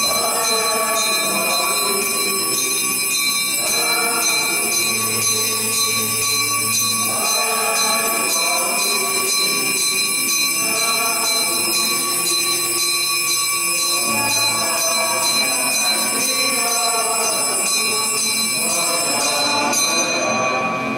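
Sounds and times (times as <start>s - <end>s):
church music: 0.0s - 20.9s.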